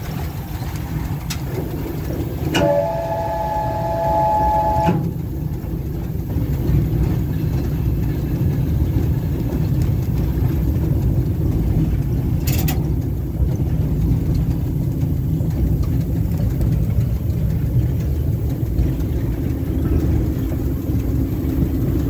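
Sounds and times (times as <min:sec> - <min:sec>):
electric train rumbling: 0:00.0 - 0:22.0.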